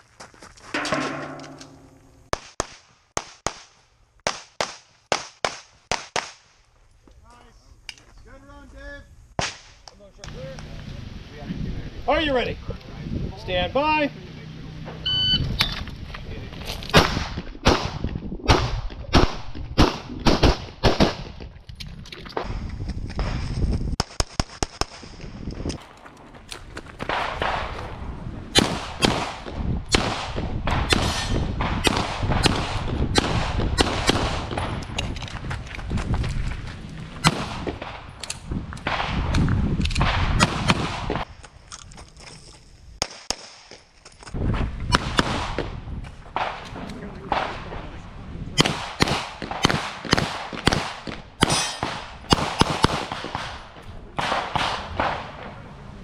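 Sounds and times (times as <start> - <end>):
pistol shots: 28.5 - 34.8, 37.2 - 38.0, 48.6 - 55.3.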